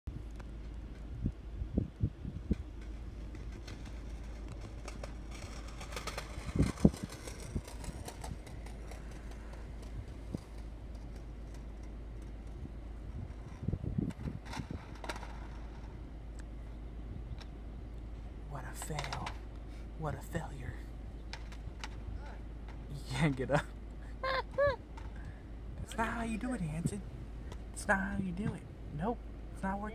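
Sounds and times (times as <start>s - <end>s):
car engine rumbling: 0.0s - 29.9s.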